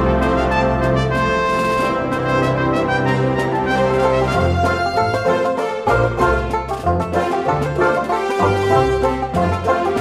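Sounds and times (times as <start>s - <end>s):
instrumental background music: 0.0s - 10.0s.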